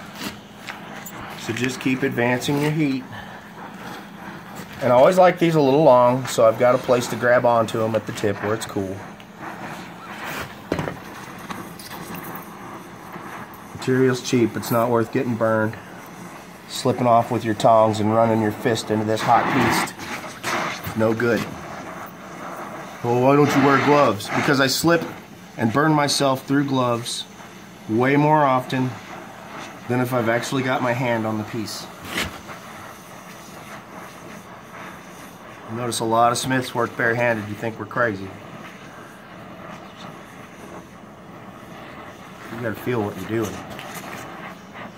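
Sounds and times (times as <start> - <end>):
torch flame hissing: 0.0 - 44.9.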